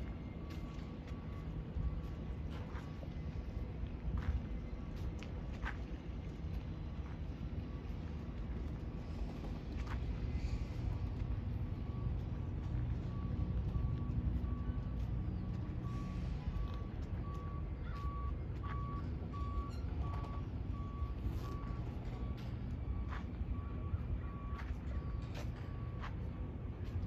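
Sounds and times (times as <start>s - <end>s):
backup alarm beeping: 0.0s - 4.7s, 6.8s - 26.9s
low rumble: 0.0s - 27.0s.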